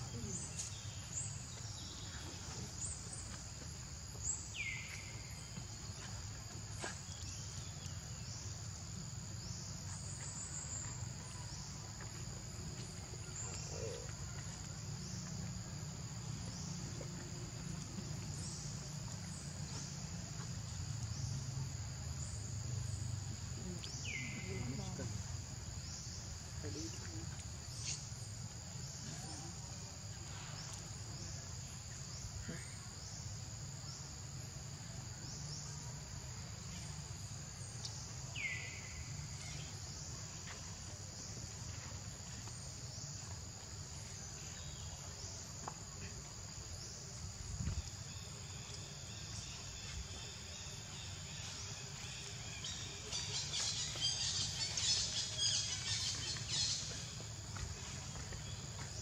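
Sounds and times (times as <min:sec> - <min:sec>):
high-pitched insect chorus: 0:00.0 - 0:59.0.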